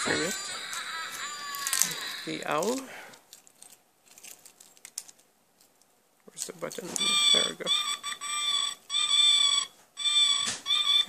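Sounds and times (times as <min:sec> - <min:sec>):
high-pitched electronic tone: 0:07.0 - 0:11.0.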